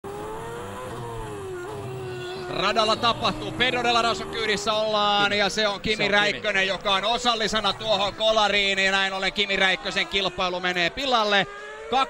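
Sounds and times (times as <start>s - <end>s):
racing car engine at speed: 0.0s - 12.0s.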